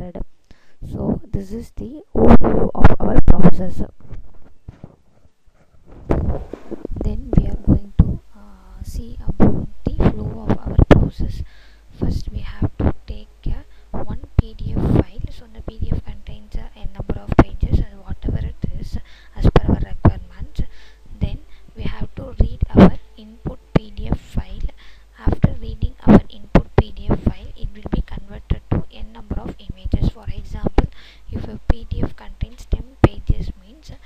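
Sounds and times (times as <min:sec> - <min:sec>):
person talking: 0:00.0 - 0:04.0, 0:06.3 - 0:34.0.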